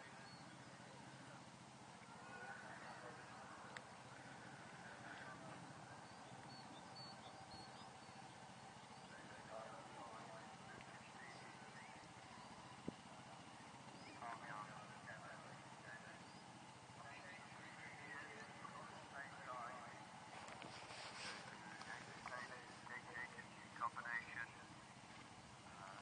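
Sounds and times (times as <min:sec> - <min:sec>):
faint high chirps: 0:00.0 - 0:09.9.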